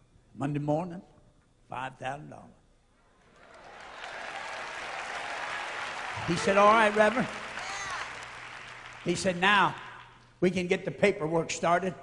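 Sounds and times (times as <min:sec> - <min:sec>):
audience applauding: 0:03.2 - 0:10.3.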